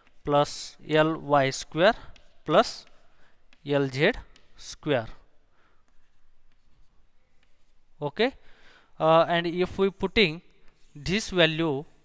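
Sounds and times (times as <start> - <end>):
chalk scratching on chalkboard: 0.0 - 8.4, 9.3 - 12.0.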